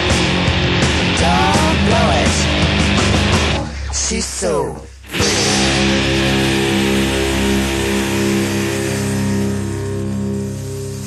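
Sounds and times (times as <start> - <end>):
electric guitar chord ringing: 5.0 - 11.0.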